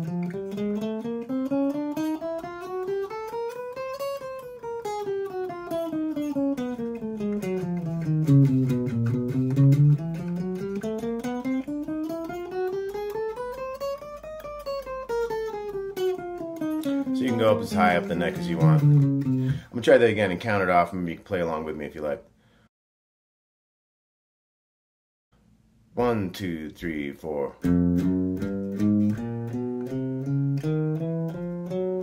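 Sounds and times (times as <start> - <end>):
electric guitar single notes: 6.1 - 19.6, 27.6 - 32.0.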